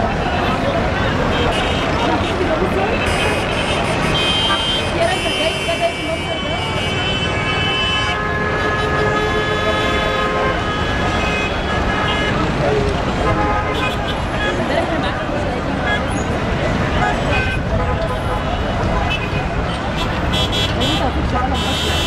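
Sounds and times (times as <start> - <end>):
street traffic: 0.0 - 22.0
voices: 0.0 - 22.0
car horns honking: 1.1 - 14.8, 16.9 - 22.0.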